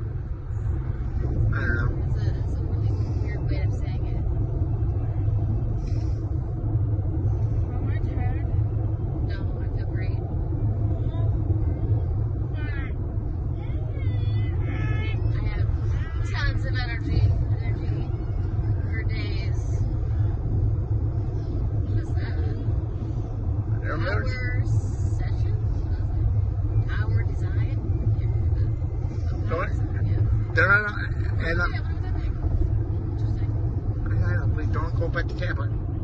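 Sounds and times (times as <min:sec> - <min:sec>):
road and engine rumble in car: 0:00.0 - 0:36.0.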